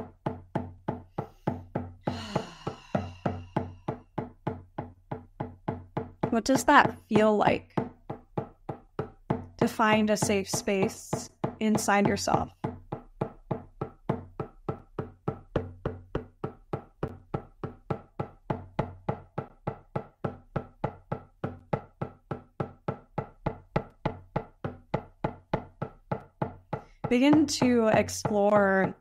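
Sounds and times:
hand drum beating steadily: 0:00.0 - 0:29.0.

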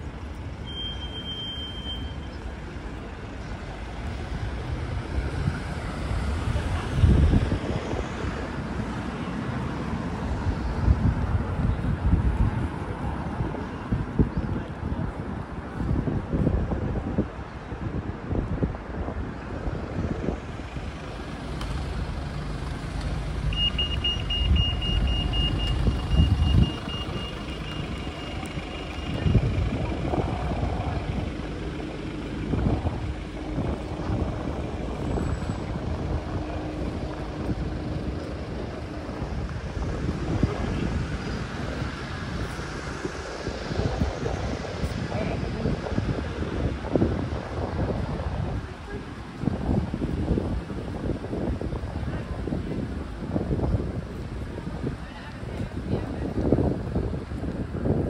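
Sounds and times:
road traffic: 0:00.0 - 0:58.0.

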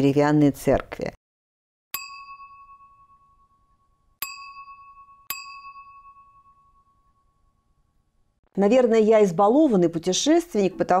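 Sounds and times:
bright bell chime: 0:02.0 - 0:07.9.

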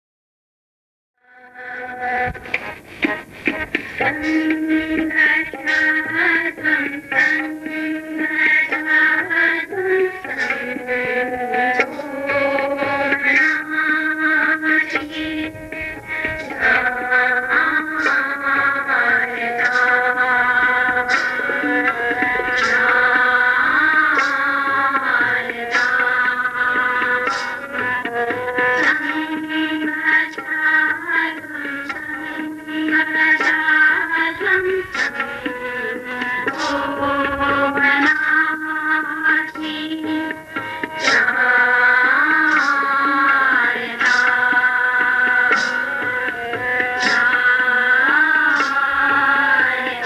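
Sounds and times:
tabla strokes: 0:01.2 - 0:50.0
girls singing a hymn in unison: 0:16.2 - 0:27.4, 0:35.4 - 0:50.0.

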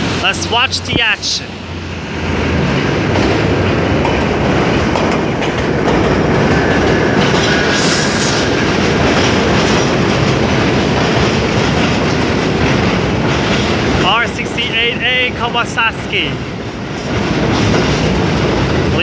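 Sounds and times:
subway train rumbling past: 0:00.0 - 0:19.0
wheels clattering over rail joints: 0:02.6 - 0:07.7, 0:08.4 - 0:14.6, 0:16.8 - 0:19.0.

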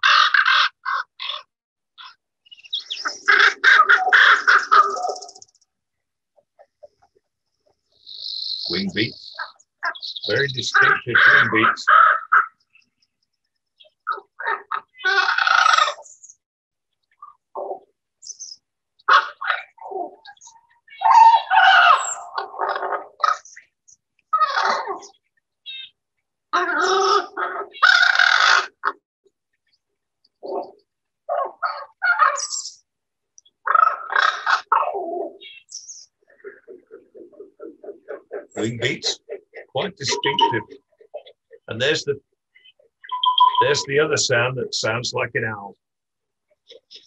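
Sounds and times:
raven croaking: 0:00.0 - 0:05.6, 0:07.9 - 0:13.0, 0:13.8 - 0:16.1, 0:17.2 - 0:17.9, 0:19.0 - 0:23.7, 0:24.3 - 0:29.0, 0:30.4 - 0:32.8, 0:33.4 - 0:45.8.

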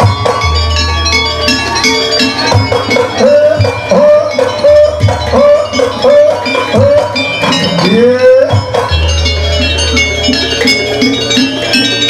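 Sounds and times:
drum strokes: 0:00.0 - 0:12.0
metal gong-chimes clinking: 0:00.0 - 0:12.0
sliding lead melody: 0:00.0 - 0:12.0.

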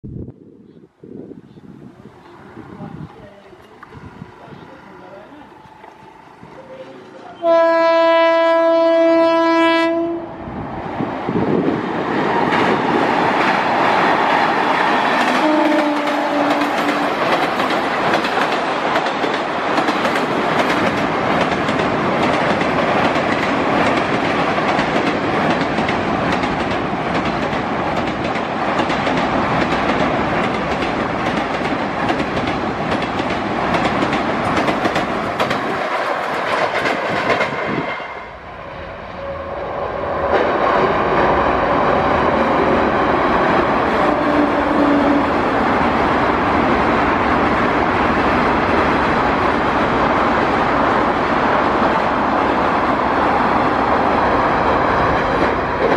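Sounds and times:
train horn blowing: 0:05.6 - 0:10.4, 0:15.3 - 0:17.2, 0:38.1 - 0:39.8, 0:43.9 - 0:45.4
train wheels clattering over rail joints: 0:12.4 - 0:38.0.

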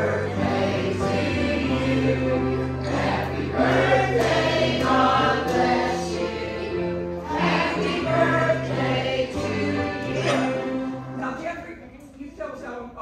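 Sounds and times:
gospel choir singing: 0:00.0 - 0:11.2.

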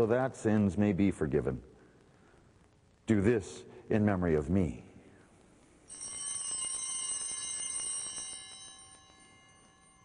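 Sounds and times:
bells ringing: 0:05.9 - 0:10.0.

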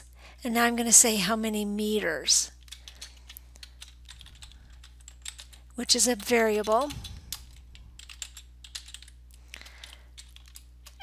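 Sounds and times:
computer keyboard clicks: 0:02.6 - 0:11.0.

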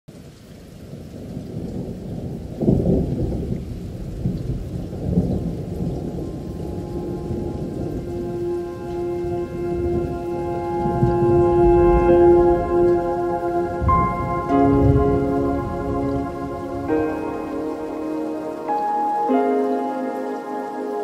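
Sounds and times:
steady rain: 0:00.1 - 0:21.0
thunder rolling: 0:01.2 - 0:19.0
sustained music chord: 0:06.5 - 0:21.0.

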